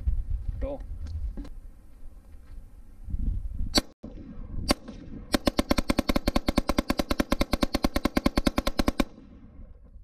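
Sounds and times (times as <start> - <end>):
wind on microphone: 0.0 - 5.5
rifle shot: 3.8 - 9.8.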